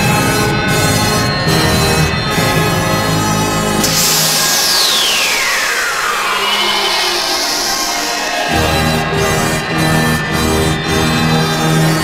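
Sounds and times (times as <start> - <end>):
music bass: 0.0 - 12.0
synthesizer hiss with falling whistle: 3.8 - 11.0.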